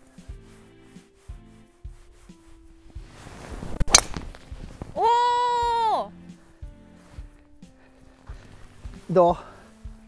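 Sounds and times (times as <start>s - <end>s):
golf club swish: 0.3s - 5.0s
golf ball struck with sharp crack: 3.7s - 5.0s.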